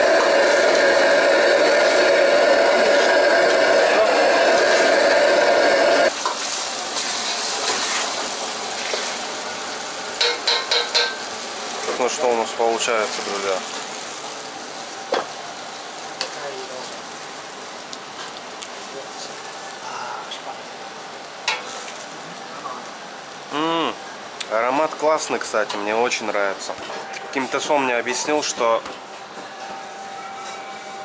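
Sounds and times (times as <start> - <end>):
sauce sizzling in a wok: 0.0 - 19.8
machine whir with steady tone: 0.0 - 31.0
metal ladle knocking wok: 10.2 - 11.2.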